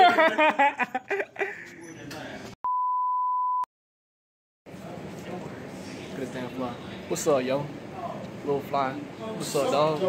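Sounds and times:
steady test-tone beep: 2.6s - 3.7s.

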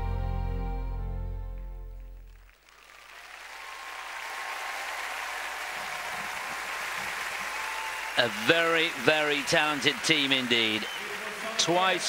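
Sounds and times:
arena crowd applauding: 2.0s - 12.0s.

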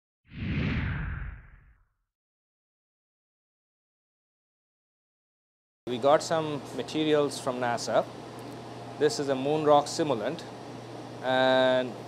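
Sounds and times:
whoosh with low rumble: 0.3s - 1.8s.

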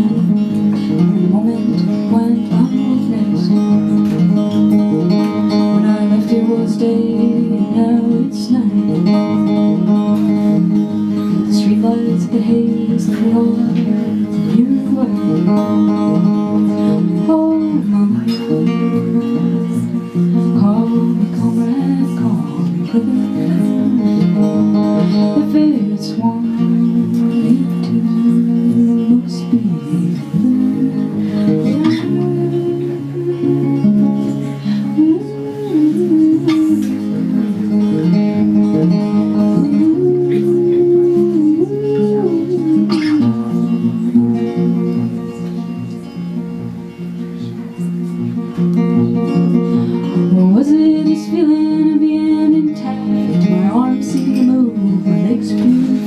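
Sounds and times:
woman singing: 0.0s - 46.6s, 49.1s - 56.0s
acoustic guitar playing: 0.0s - 56.0s.

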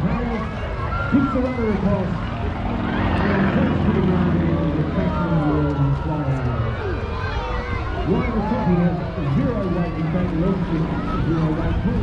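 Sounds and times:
propeller plane engine drone: 0.0s - 12.0s
people talking: 1.2s - 6.8s, 7.9s - 12.0s.

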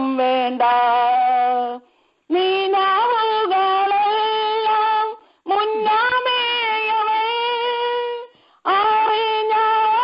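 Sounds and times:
woman singing a hymn: 0.0s - 10.0s.

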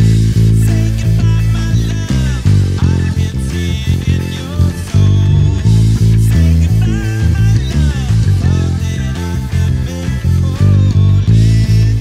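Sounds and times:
bending guitar lines: 0.0s - 12.0s
electric bass guitar plucked: 0.0s - 12.0s
rock band recording: 0.0s - 12.0s.

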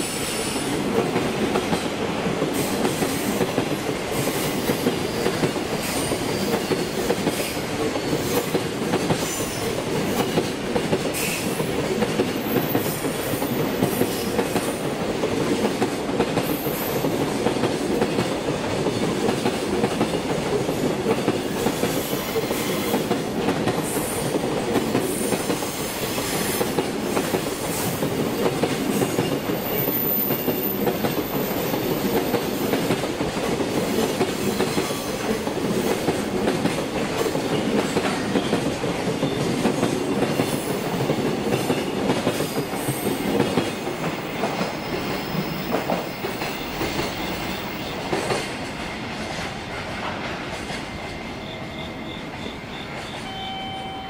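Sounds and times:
train wheels rumbling on rail: 0.0s - 54.0s
clickety-clack over rail joints: 0.5s - 51.3s
high-pitched wheel squeals: 51.3s - 54.0s.

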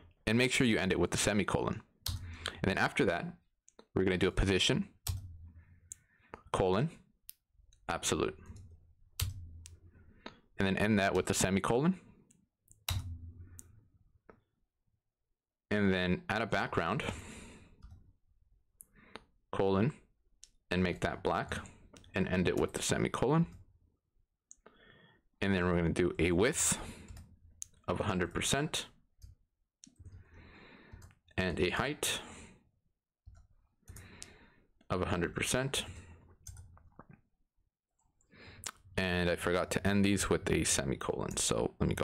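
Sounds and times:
keyboard typing clicks: 12.7s - 13.7s.

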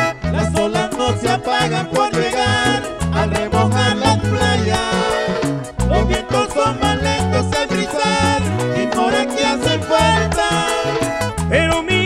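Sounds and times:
bass line: 0.0s - 12.0s
button accordion melody: 0.0s - 12.0s
steady percussion: 0.0s - 12.0s.

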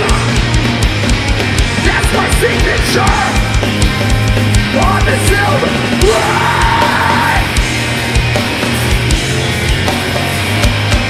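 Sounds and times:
screamed lead vocal: 0.0s - 0.4s, 1.8s - 3.6s, 4.8s - 7.6s
bass guitar: 0.0s - 11.0s
distorted electric guitars: 0.0s - 11.0s.

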